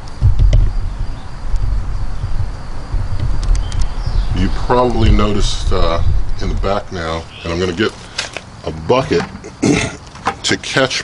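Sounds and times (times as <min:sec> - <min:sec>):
low rumble and buffeting: 0:00.0 - 0:10.0
faint clicks: 0:03.2 - 0:04.0.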